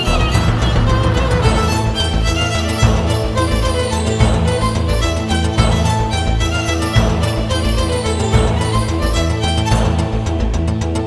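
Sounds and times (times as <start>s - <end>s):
background music with strings: 0.0s - 11.0s.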